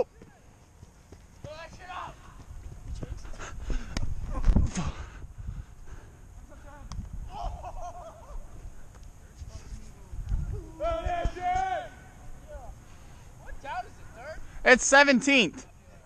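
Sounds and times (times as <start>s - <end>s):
running footsteps on grass: 0.0s - 7.2s
wind rumble on microphone: 2.5s - 6.1s, 6.8s - 11.4s
faint shouts: 10.5s - 12.7s.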